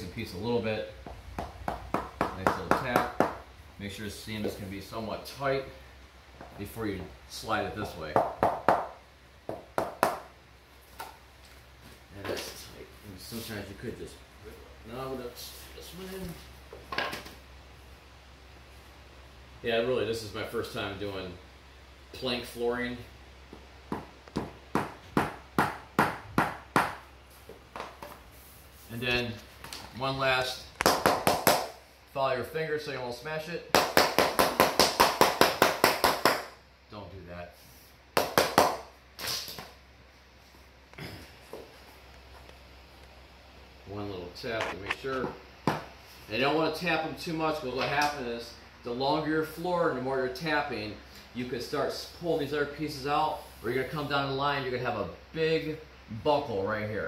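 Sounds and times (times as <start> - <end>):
hammer knocking on vinyl plank: 23.9 - 27.0.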